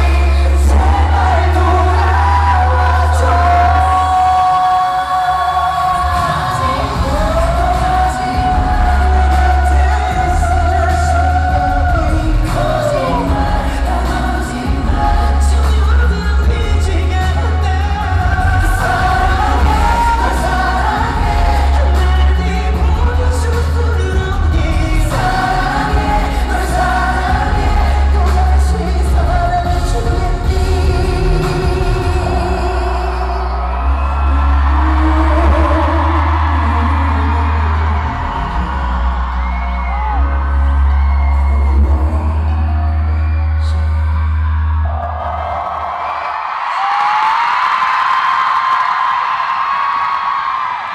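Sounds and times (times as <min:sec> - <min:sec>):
live pop ballad with male singing: 0:00.0 - 0:45.8
crowd cheering and screaming: 0:00.0 - 0:50.9.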